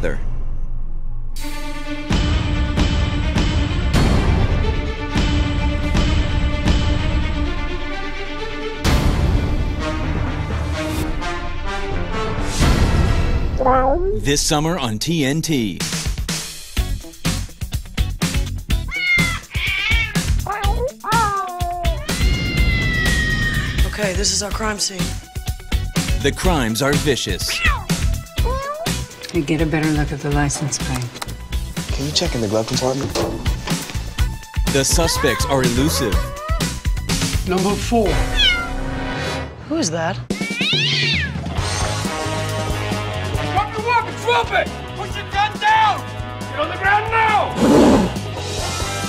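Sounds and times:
background music: 0:00.0 - 0:49.0
cats meowing: 0:18.9 - 0:23.8, 0:27.5 - 0:29.0, 0:34.9 - 0:36.8, 0:38.2 - 0:38.8, 0:40.3 - 0:41.4.

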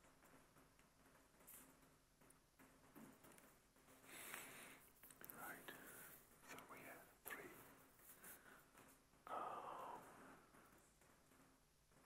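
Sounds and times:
faint whispering: 0:04.1 - 0:10.8.

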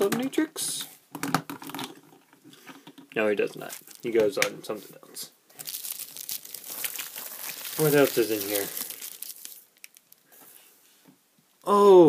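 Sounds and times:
packaging crinkling and rustling: 0:03.6 - 0:04.5, 0:05.5 - 0:10.3.

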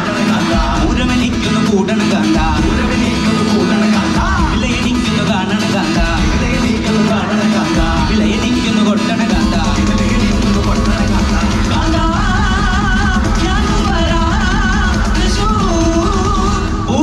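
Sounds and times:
guitars: 0:00.0 - 0:17.0
live band playing: 0:00.0 - 0:17.0
people singing: 0:00.0 - 0:17.0.

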